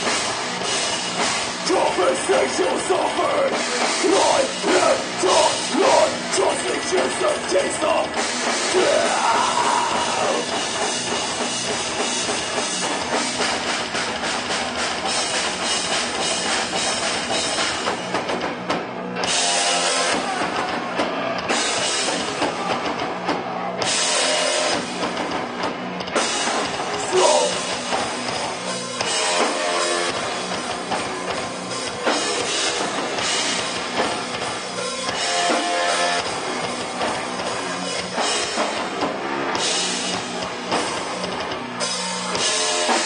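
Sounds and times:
heavy metal band playing: 0.0s - 43.0s.

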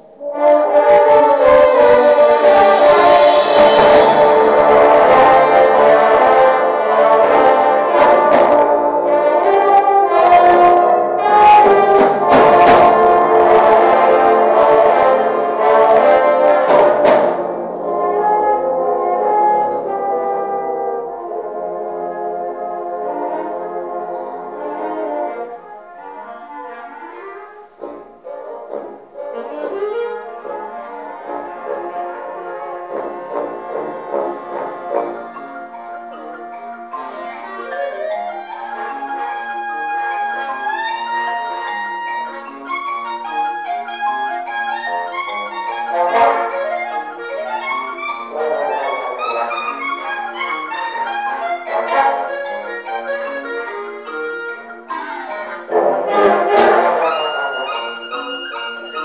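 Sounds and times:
concert band with brass: 0.0s - 59.0s
percussion strikes: 0.2s - 20.6s, 31.3s - 37.4s, 55.7s - 58.1s.

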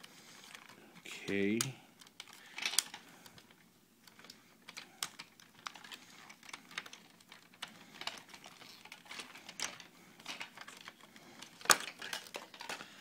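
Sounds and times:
plastic toy parts clicking: 0.4s - 12.8s.

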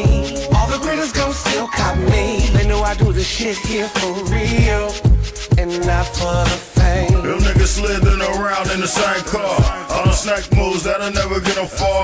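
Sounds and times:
man rapping over a beat: 0.0s - 12.0s.

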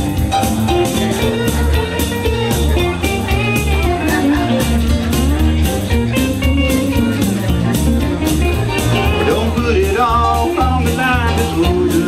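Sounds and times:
bass and drum beat: 0.0s - 12.0s
electric guitar lead bending notes: 0.0s - 12.0s.

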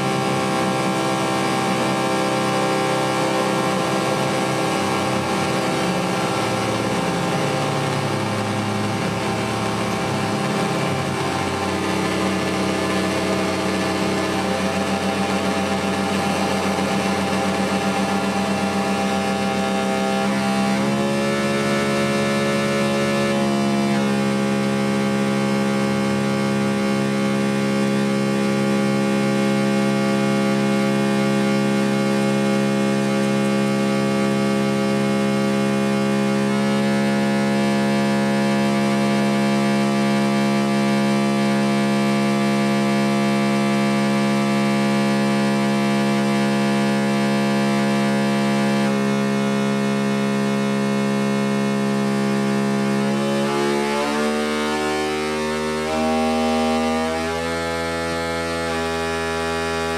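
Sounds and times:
synthesizer drone: 0.0s - 59.9s.

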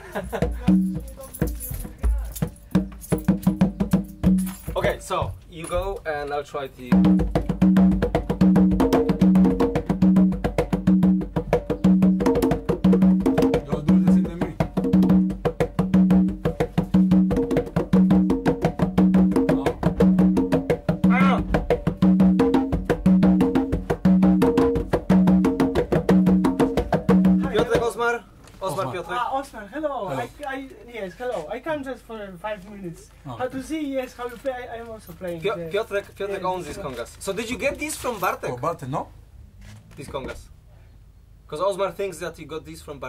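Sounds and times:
congas playing fast rhythm: 0.0s - 5.4s, 6.9s - 28.2s.

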